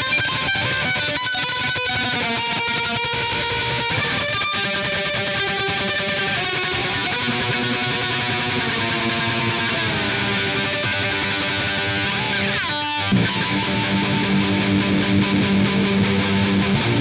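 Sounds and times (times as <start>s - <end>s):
looped electric violin: 0.0s - 17.0s.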